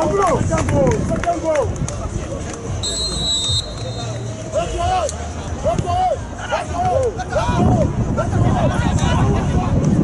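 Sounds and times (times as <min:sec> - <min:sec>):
referee's whistle: 0:02.8 - 0:04.4
players and spectators shouting: 0:02.9 - 0:09.7.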